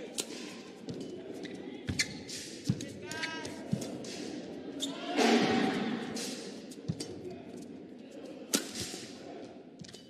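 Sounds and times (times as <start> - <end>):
crowd noise hum: 0.0 - 10.0.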